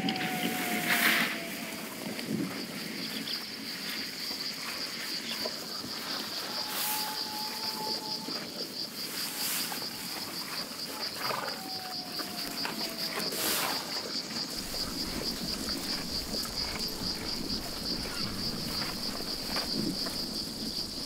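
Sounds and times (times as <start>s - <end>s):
insects chirring: 0.0s - 21.0s
faint falling tone: 14.5s - 21.0s.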